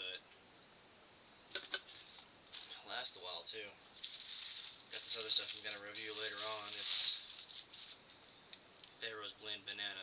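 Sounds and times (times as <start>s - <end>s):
high-pitched electronic whine: 0.0s - 10.0s
package handling noise: 4.0s - 8.0s.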